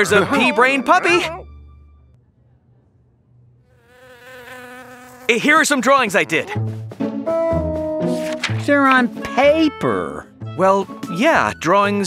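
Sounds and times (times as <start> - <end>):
cartoon housefly buzzing: 3.6 - 6.3.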